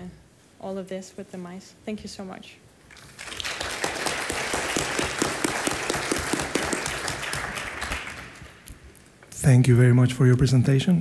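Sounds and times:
audience applauding: 2.9 - 8.9.

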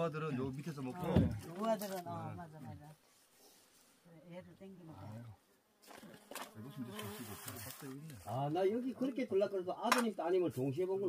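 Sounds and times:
flying insect buzzing: 5.8 - 7.9.

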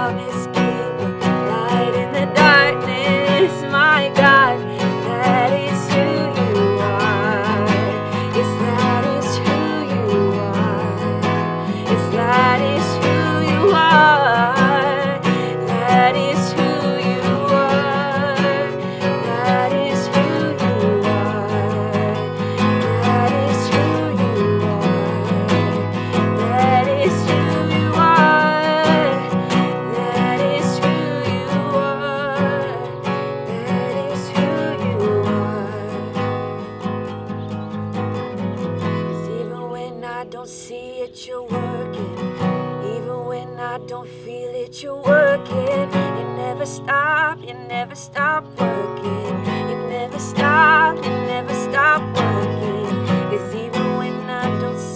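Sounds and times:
woman singing: 0.0 - 37.4, 38.4 - 54.9
strummed acoustic guitar: 0.0 - 54.9.

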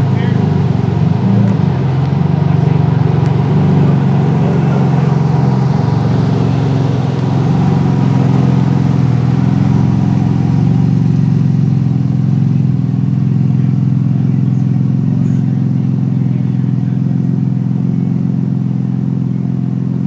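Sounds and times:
sports car engine idling: 0.0 - 20.0.

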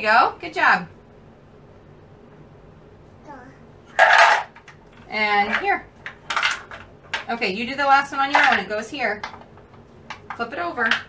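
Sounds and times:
faint small voice: 3.2 - 3.7
wooden pieces clattering in box: 4.0 - 4.7, 6.0 - 7.3.

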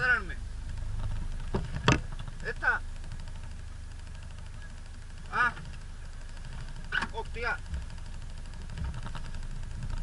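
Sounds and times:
engine rumbling at low revs: 0.0 - 10.0.

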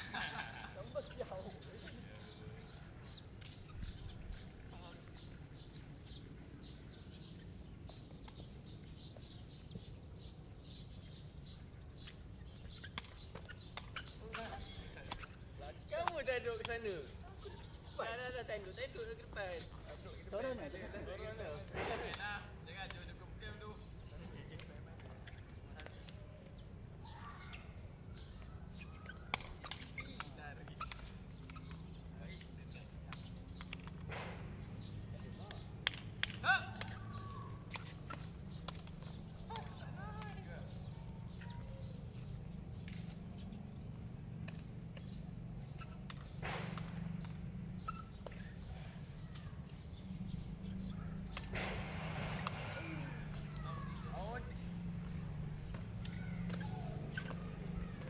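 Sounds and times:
faint distant voices: 14.1 - 58.0.

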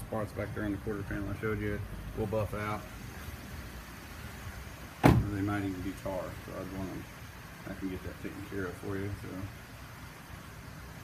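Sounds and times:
faint even hiss: 0.0 - 11.0.

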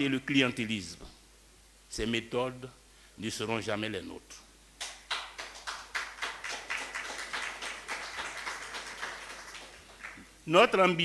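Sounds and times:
audience clapping: 4.8 - 10.3.

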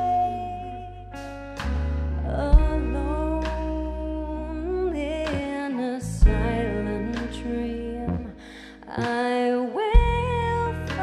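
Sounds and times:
electric bass: 0.0 - 9.2, 10.0 - 11.0
electric guitar: 0.0 - 11.0.

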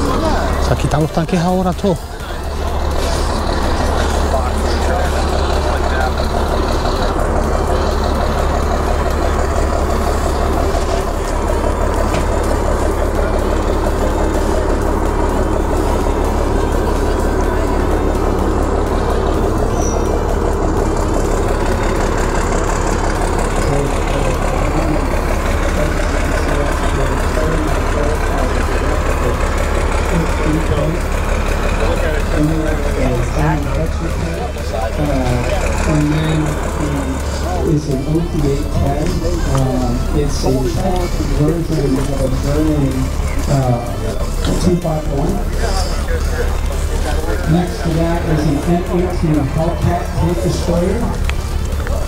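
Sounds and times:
large engine running: 0.0 - 52.0.

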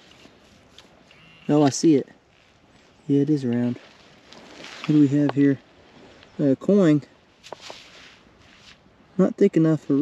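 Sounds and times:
faint rustling: 0.0 - 9.0.

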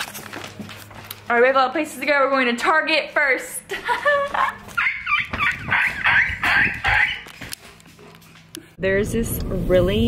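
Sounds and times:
dog whining and yipping: 4.7 - 7.4.

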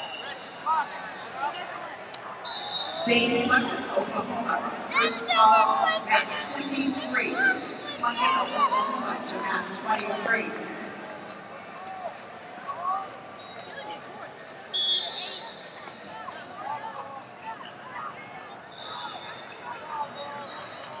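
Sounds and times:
spectators shouting: 0.0 - 12.3
faint long high whistle tone: 14.7 - 15.8.

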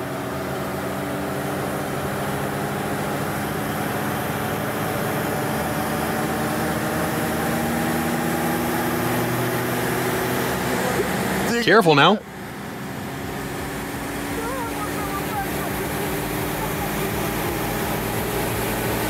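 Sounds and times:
car engine droning under throttle: 0.0 - 19.0.

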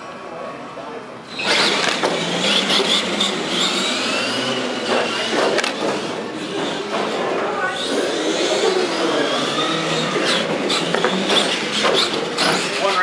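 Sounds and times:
toy truck electric motors whining: 1.2 - 13.0.

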